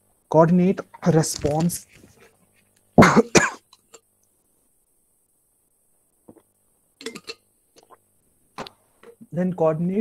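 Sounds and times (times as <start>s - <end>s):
person coughing: 3.0s - 3.8s.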